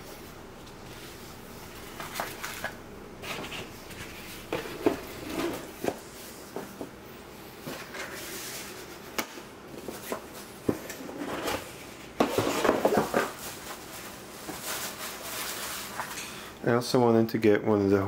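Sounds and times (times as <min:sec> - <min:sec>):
packaging rustling: 0:01.8 - 0:05.8, 0:12.2 - 0:16.2.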